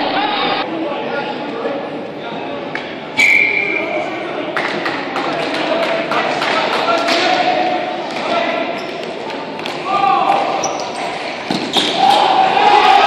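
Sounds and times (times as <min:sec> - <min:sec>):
spectators' voices and calls: 0:00.0 - 0:13.0.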